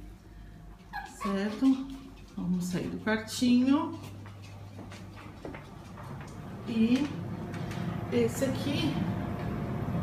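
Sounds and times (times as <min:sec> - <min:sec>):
steady low hum: 0:00.0 - 0:10.0
footsteps: 0:00.7 - 0:08.0.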